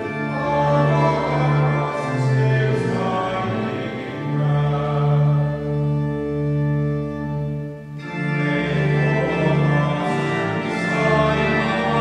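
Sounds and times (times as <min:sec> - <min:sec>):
congregation singing: 0:00.0 - 0:06.2, 0:08.0 - 0:12.0
church organ chords: 0:00.0 - 0:12.0.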